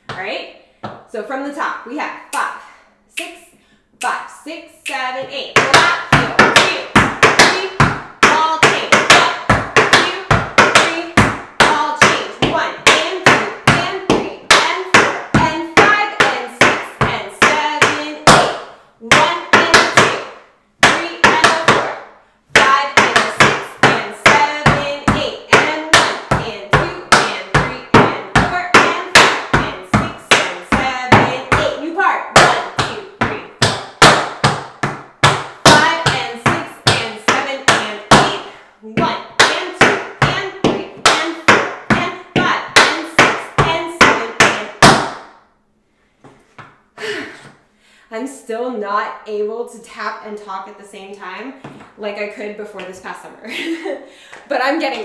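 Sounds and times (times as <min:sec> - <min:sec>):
tap shoes on wooden board: 0:00.8 - 0:01.0, 0:05.6 - 0:31.7, 0:32.4 - 0:38.4, 0:51.6 - 0:52.0.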